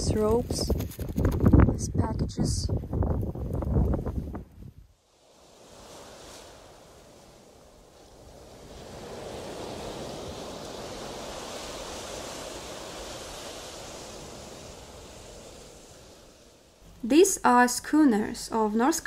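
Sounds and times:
wind and surf: 0.0 - 19.0.

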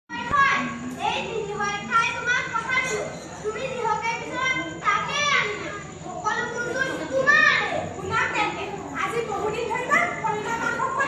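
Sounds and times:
children speaking dialogue: 0.1 - 11.0.

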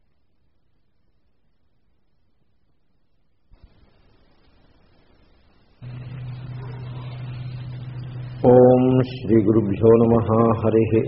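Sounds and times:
low drone: 5.8 - 11.0
man chanting: 6.2 - 11.0.

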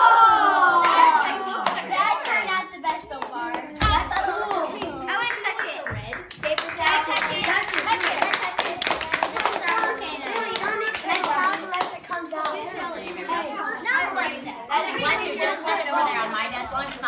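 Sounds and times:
children talking and exclaiming: 0.0 - 17.0
hand claps: 3.2 - 12.6.

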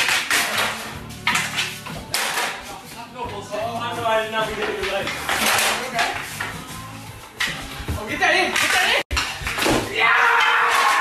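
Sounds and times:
hockey sticks hitting metal can: 0.0 - 2.7, 4.4 - 6.6, 8.5 - 11.0.

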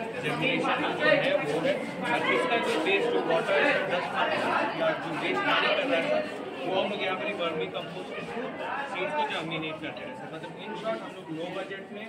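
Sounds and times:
background chatter: 0.0 - 12.0
people talking: 0.0 - 12.0.

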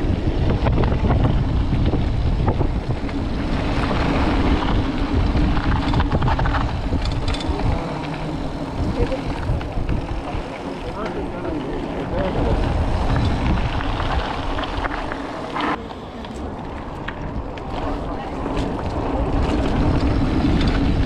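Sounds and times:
bike clicks and rattles: 0.0 - 21.0
wind buffeting microphone: 0.0 - 21.0.

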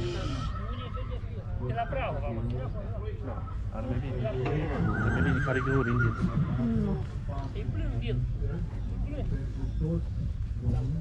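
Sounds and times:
horse whinnying: 4.7 - 6.8.

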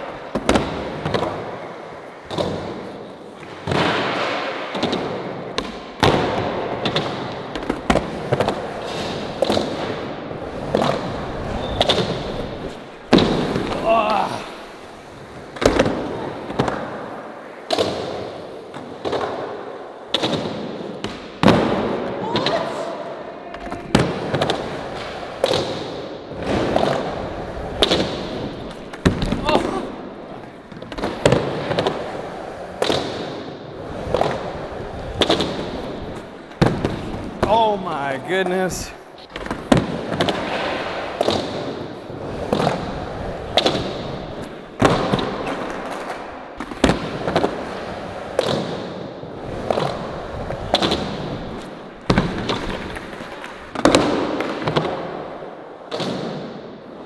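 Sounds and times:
skateboard wheels rolling on concrete: 0.0 - 57.0
skateboards clacking on ground: 23.5 - 57.0.

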